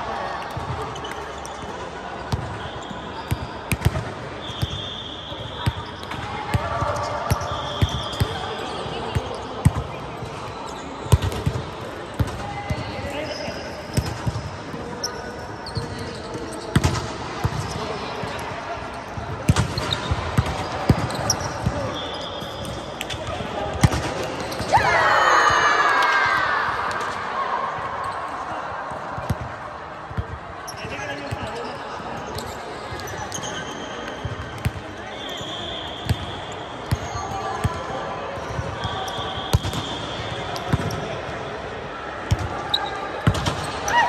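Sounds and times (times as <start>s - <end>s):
sneakers squeaking: 0.5s - 25.6s, 30.2s - 41.6s, 42.3s - 44.0s.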